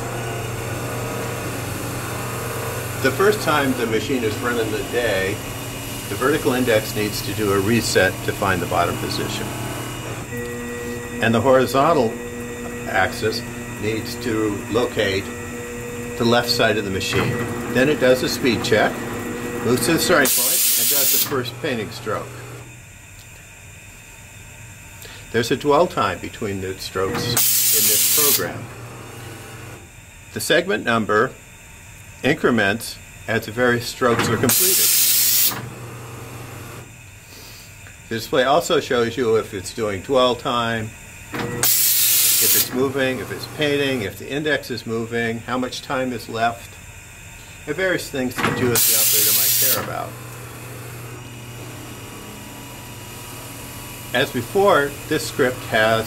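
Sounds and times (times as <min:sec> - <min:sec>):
machine humming: 0:00.0 - 0:23.2, 0:25.0 - 0:30.2, 0:33.0 - 0:37.2, 0:39.2 - 0:56.0.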